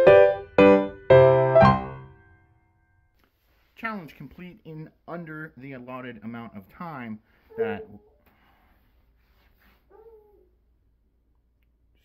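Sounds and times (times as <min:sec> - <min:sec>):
dog whining: 0:07.5 - 0:08.2, 0:09.9 - 0:10.5.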